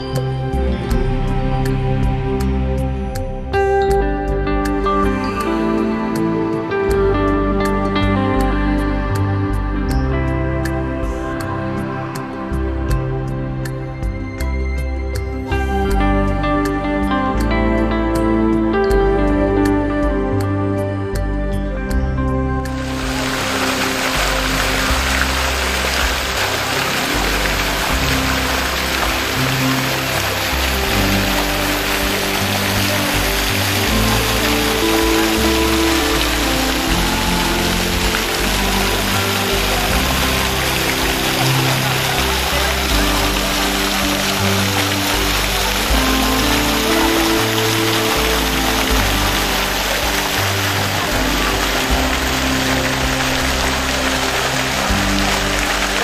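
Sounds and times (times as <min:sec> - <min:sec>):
music with slow held notes: 0:00.0 - 0:56.0
fountain water splashing: 0:22.7 - 0:56.0.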